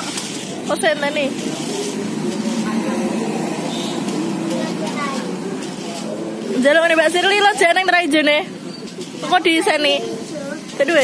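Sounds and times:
chatter of many voices: 0.0 - 11.0
high-pitched child's voice: 4.5 - 5.4.

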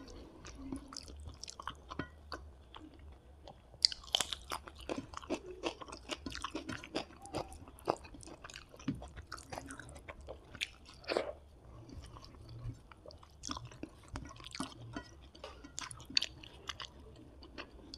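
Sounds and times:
chewing and wet mouth sounds: 0.0 - 17.9.

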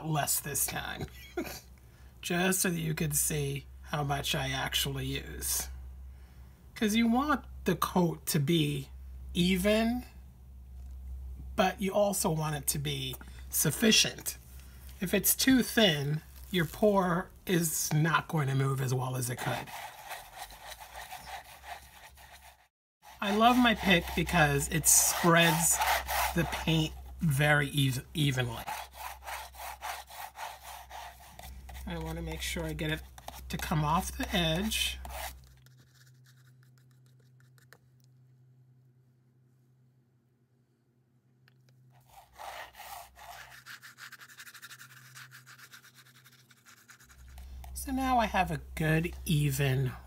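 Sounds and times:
pick scraping wet paint on canvas: 17.6 - 27.3, 28.3 - 37.8, 42.0 - 47.8.

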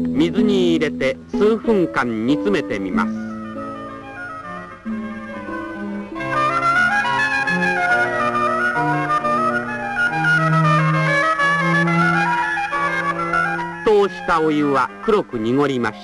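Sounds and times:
background music of held notes: 0.0 - 16.0.

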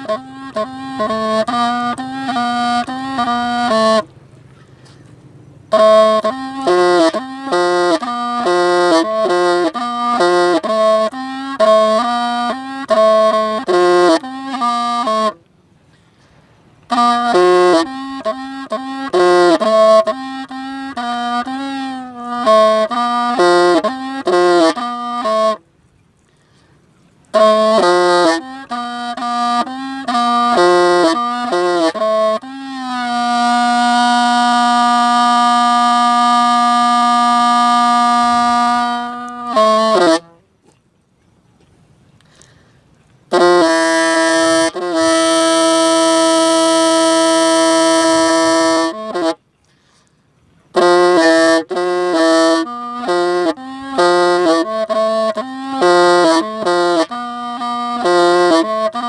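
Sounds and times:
reedy bamboo pipe melody: 0.0 - 59.0.

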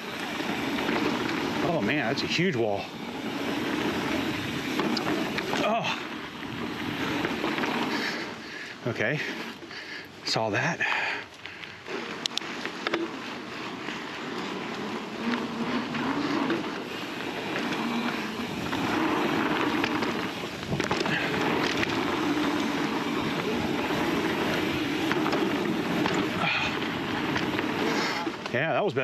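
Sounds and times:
bike knocks and rattles: 0.0 - 8.3, 12.7 - 28.7
bike tyres rolling over dirt: 0.0 - 29.0
wind noise on microphone: 20.5 - 25.3.

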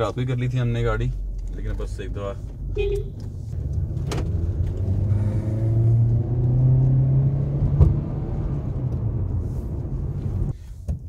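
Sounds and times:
car engine hum: 0.0 - 10.9
road noise inside car: 0.0 - 11.0.

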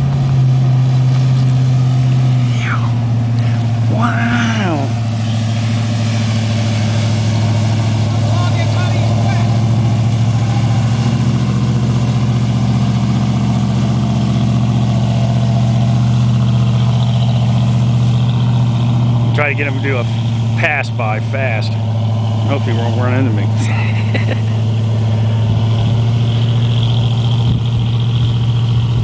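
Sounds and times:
swamp buggy engine droning: 0.0 - 29.0.

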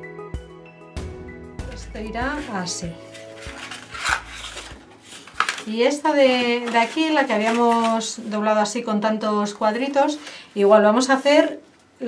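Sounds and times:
cardstock rustling and scraping: 2.1 - 8.3.

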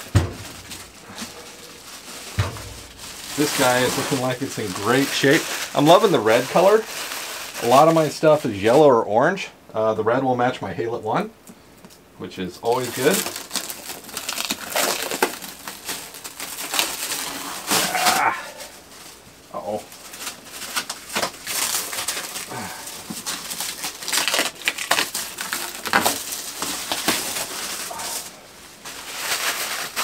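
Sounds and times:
plastic wrap crackling and rustling: 0.0 - 8.9, 12.6 - 30.0.

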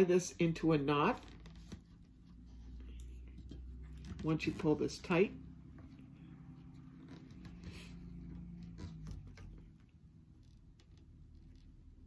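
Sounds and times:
fabric and thread rustling: 0.9 - 12.0.

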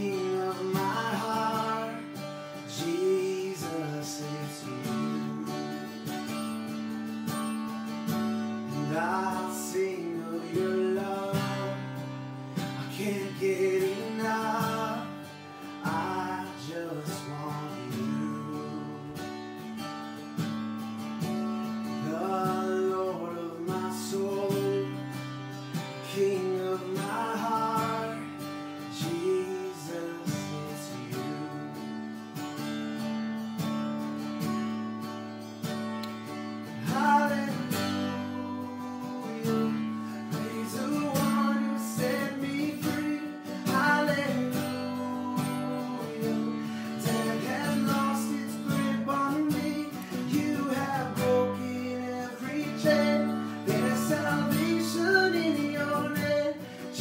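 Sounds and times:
man singing: 0.0 - 6.6, 8.7 - 19.5, 21.8 - 32.0, 36.6 - 57.0
strummed acoustic guitar: 0.0 - 57.0.

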